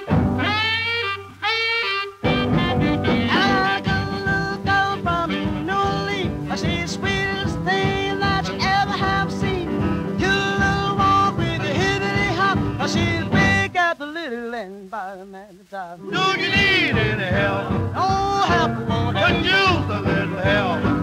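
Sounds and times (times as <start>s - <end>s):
jump blues band playing: 0.0s - 21.0s.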